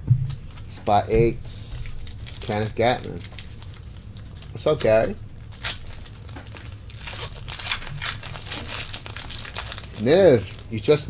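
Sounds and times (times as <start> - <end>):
foil wrapper tearing and crackling: 0.3 - 11.0.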